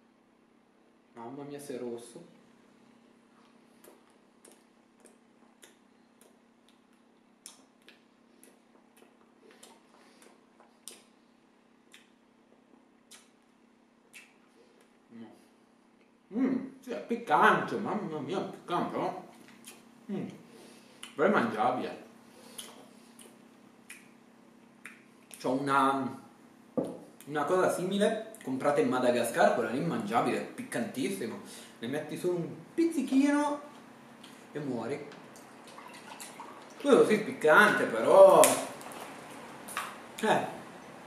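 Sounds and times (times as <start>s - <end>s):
mouth clicks of chewing: 3.8s - 11.1s, 11.9s - 12.2s, 13.1s - 13.4s, 14.1s - 14.9s, 19.4s - 19.9s, 22.5s - 24.2s.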